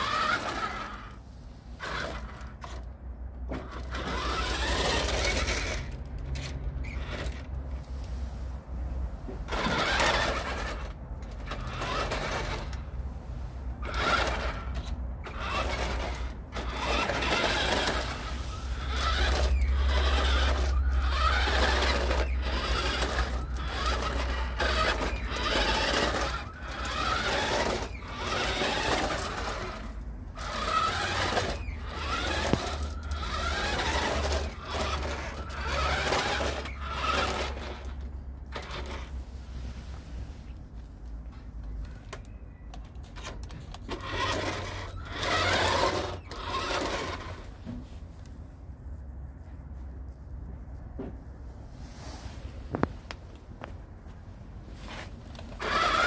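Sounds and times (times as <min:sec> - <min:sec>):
small electric motor whining: 0:00.0 - 0:01.2, 0:01.8 - 0:02.9, 0:03.6 - 0:07.5, 0:09.5 - 0:12.8, 0:13.8 - 0:39.1, 0:43.2 - 0:47.5, 0:54.9 - 0:56.0
tyres on brick paving: 0:00.0 - 0:56.0.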